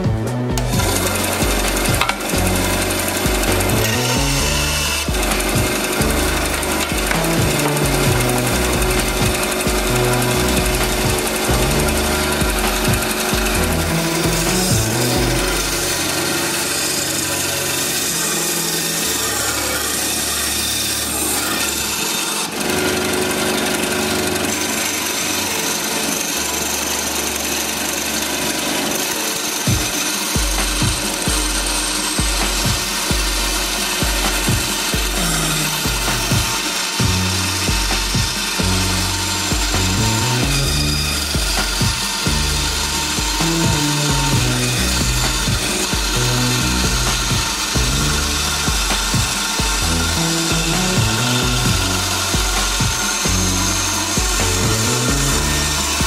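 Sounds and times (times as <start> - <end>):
background music with bass line: 0.0 - 21.8, 29.6 - 56.0
band saw cutting wood: 0.0 - 56.0.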